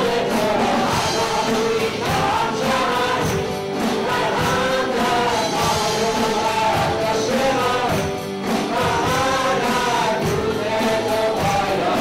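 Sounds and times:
acoustic and electric guitars: 0:00.0 - 0:12.0
drums: 0:00.0 - 0:12.0
voices singing together: 0:00.0 - 0:12.0.

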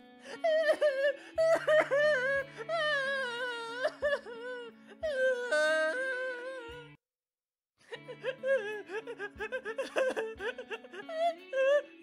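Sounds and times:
high wordless voice singing: 0:00.6 - 0:07.0, 0:07.9 - 0:12.0.

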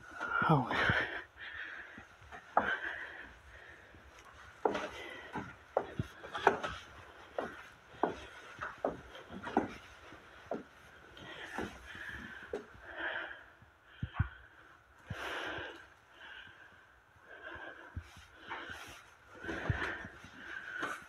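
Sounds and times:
footsteps on wooden stairs: 0:00.1 - 0:12.7, 0:19.4 - 0:21.0.

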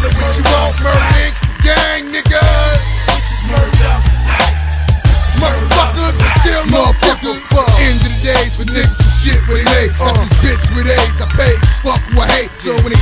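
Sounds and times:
heavy bass line: 0:00.0 - 0:13.0
rapped vocals: 0:00.0 - 0:13.0.

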